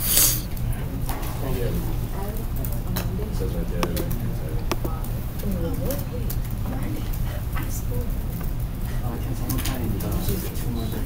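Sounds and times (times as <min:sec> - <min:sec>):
steady low hum: 0:00.5 - 0:11.0
muffled background voices: 0:00.6 - 0:11.0
sharp clicks: 0:03.8 - 0:05.1.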